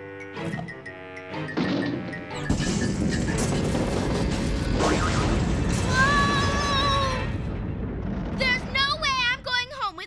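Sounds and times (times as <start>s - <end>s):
cartoon music with short notes: 0.0s - 3.0s
loud crash sound effect: 2.5s - 8.9s.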